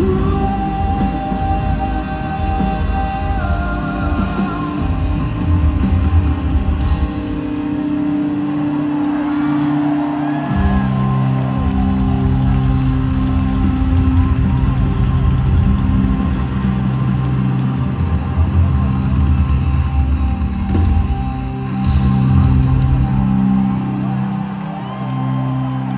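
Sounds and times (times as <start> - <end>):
live rock band: 0.0 - 25.9.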